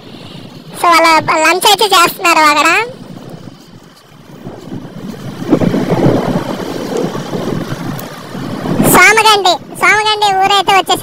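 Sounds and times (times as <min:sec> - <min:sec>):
motorcycle road noise: 0:00.0 - 0:11.0
wind rushing over microphone: 0:00.0 - 0:11.0.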